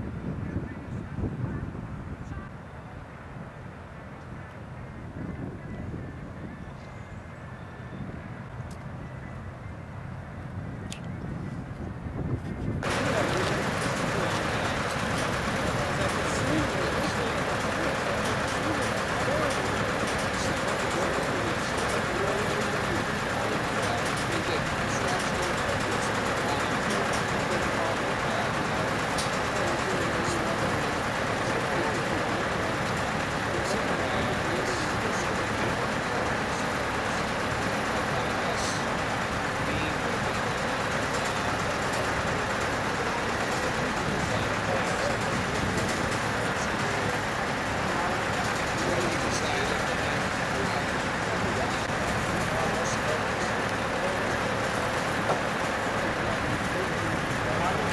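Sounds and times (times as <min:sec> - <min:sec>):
heavy machinery engine noise: 0:00.0 - 0:57.9
indistinct voices: 0:12.8 - 0:57.9.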